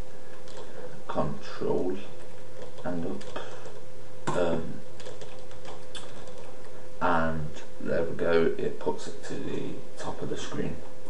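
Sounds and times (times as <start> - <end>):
low electrical hum: 0.0 - 11.0
keyboard keys clicking: 0.4 - 0.7, 2.6 - 3.8, 5.0 - 6.5.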